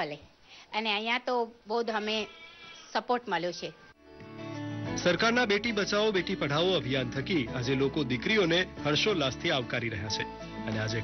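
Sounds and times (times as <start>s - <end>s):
woman speaking: 0.0s - 3.8s.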